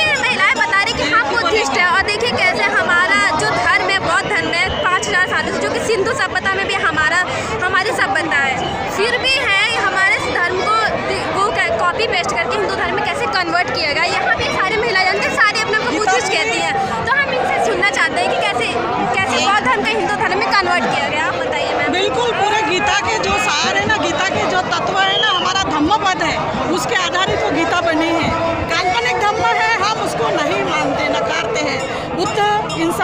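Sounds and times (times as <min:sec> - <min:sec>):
crowd chatter: 0:00.0 - 0:33.0
woman talking: 0:00.0 - 0:33.0.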